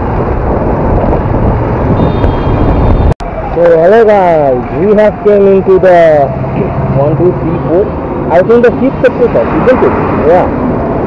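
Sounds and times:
motorbike engine and wind rumble: 0.0s - 11.0s.

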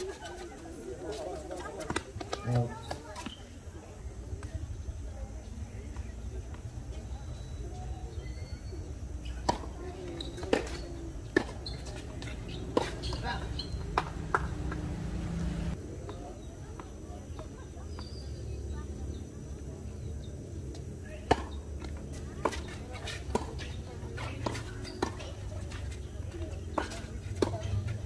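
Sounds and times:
tennis ball struck by rackets: 9.4s - 15.6s
tennis ball bouncing on court: 9.4s - 15.7s, 21.2s - 26.1s, 26.7s - 28.0s.

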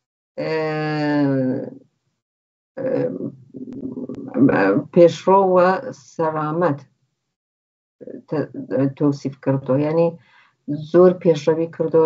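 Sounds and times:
woman speaking: 0.4s - 1.8s, 2.8s - 6.8s, 8.0s - 12.0s.

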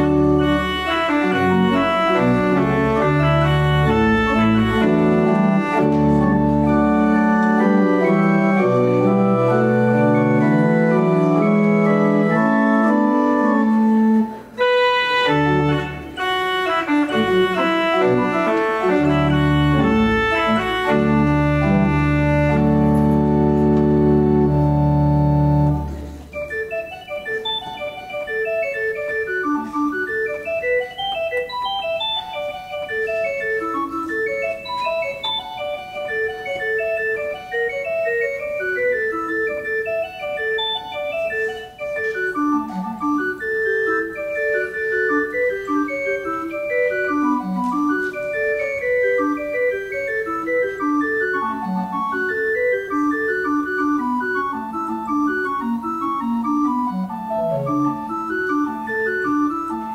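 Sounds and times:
organ music: 0.0s - 59.9s.

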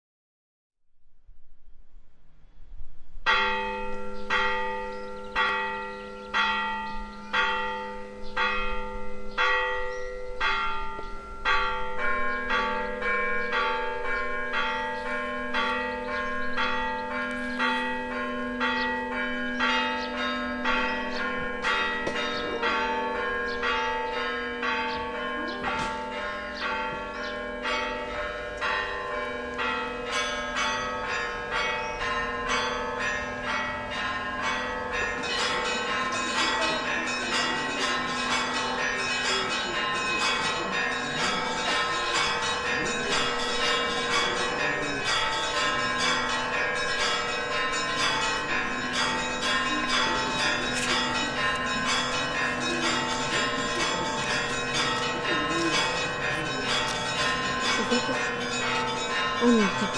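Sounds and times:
church bells ringing: 3.2s - 59.9s.

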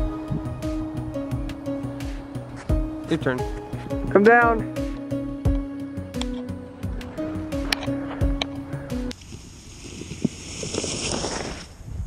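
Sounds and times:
background music with beat: 0.0s - 9.1s
sled scraping over snow: 9.1s - 12.0s.

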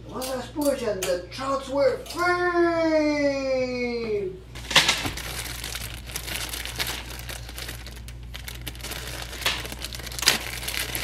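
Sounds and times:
plastic wrapping crinkling: 4.6s - 11.0s.

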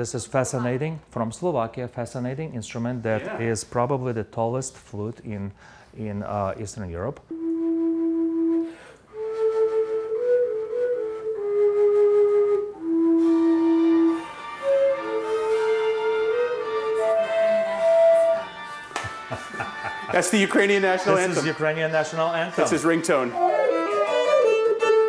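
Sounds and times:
overtone flute playing slow tune: 7.3s - 18.9s, 23.3s - 25.0s.

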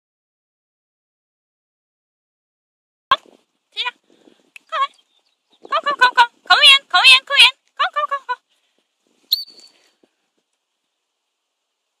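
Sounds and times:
dog whistle blast: 9.3s - 9.7s
high calls: 9.3s - 9.9s.

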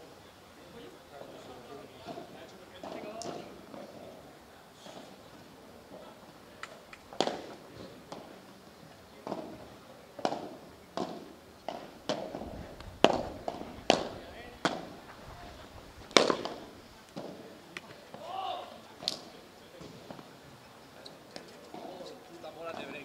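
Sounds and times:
padel ball struck by rackets: 7.1s - 7.5s, 10.2s - 15.0s, 16.1s - 17.4s
ball bouncing off court and glass: 13.0s - 15.0s, 16.1s - 17.4s.

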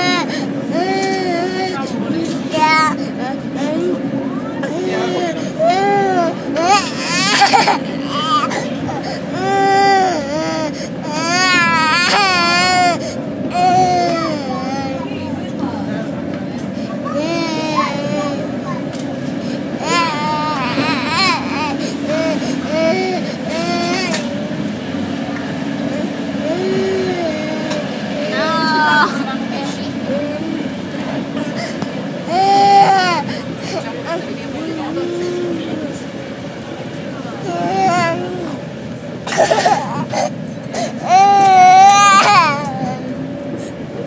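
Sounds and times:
toddler crying: 0.0s - 4.0s, 4.6s - 15.1s, 17.1s - 18.8s, 19.8s - 24.6s, 25.9s - 29.2s, 31.4s - 36.0s, 37.4s - 38.6s, 39.3s - 43.1s
moving train running noise: 0.0s - 44.0s.

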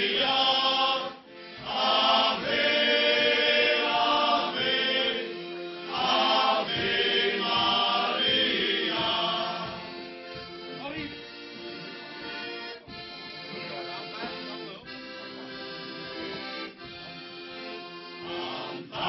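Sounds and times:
men's choir singing: 0.0s - 10.6s, 18.1s - 19.0s.

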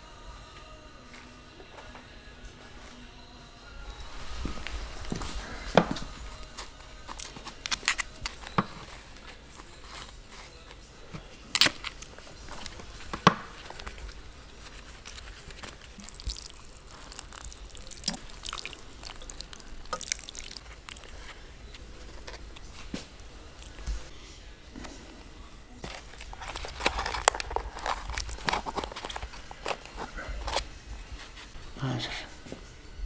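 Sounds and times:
water sprinkling onto soil: 16.0s - 20.8s.

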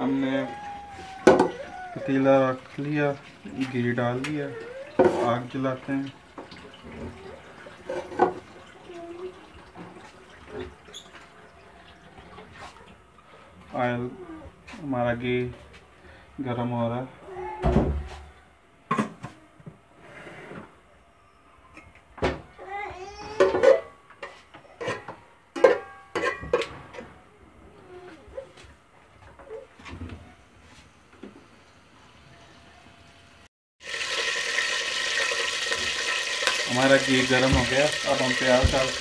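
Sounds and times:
loud steady sizzle: 33.8s - 39.0s.

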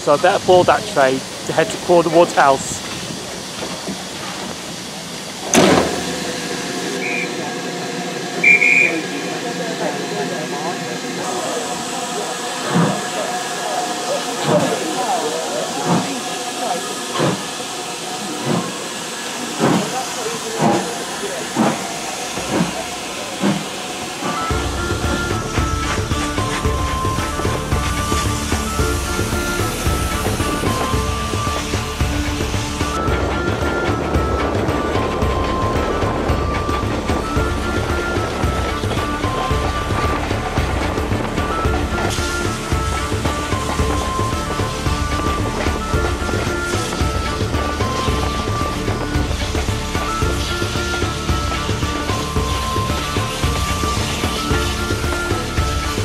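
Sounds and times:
steam locomotive exhaust chuffs: 0.0s - 56.0s
steam whistle notes: 5.5s - 56.0s
music: 5.6s - 19.7s, 22.4s - 56.0s.

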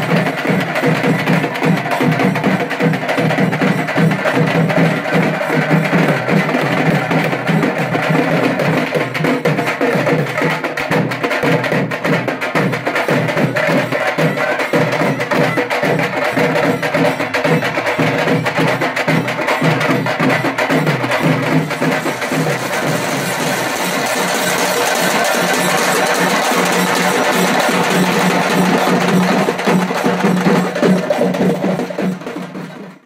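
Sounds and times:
drums playing fast rhythm: 0.0s - 33.0s.

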